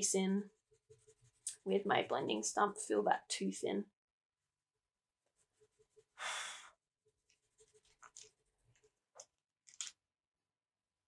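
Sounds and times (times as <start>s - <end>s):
pastel scratching on paper: 0.3s - 1.7s, 5.3s - 6.2s, 7.1s - 9.0s.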